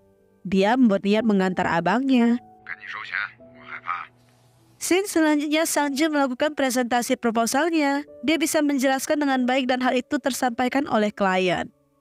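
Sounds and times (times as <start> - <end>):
soft background music: 0.0 - 12.0
narration: 0.5 - 11.7
person speaking in phone voice: 2.7 - 4.2.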